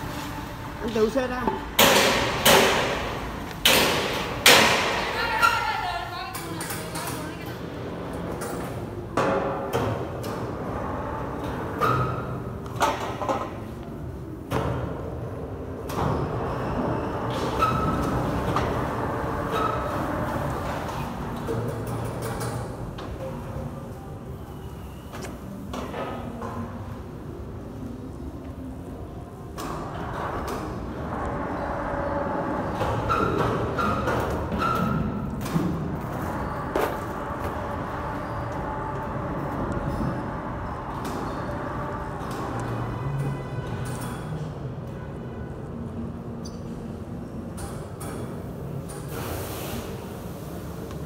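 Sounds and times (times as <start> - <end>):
steady background noise: 0.0 - 51.0.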